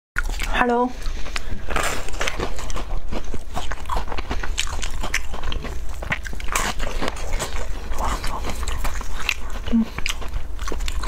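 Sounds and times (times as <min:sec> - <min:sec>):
crunchy cookie chewing: 0:00.2 - 0:11.0.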